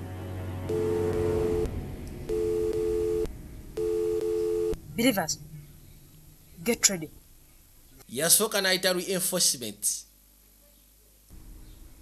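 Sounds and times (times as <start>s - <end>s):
two-note electronic phone beep: 0.7s - 1.7s, 2.3s - 4.8s.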